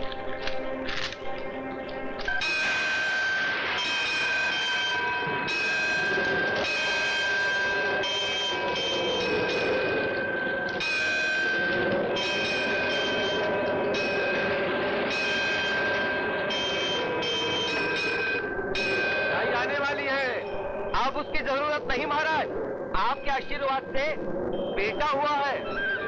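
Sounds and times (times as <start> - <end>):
temple bells ringing: 0.0 - 22.4.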